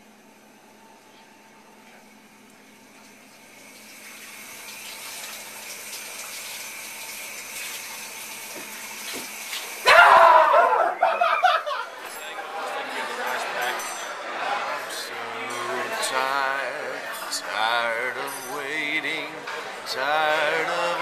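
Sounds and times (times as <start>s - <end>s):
shower running: 2.9s - 9.9s.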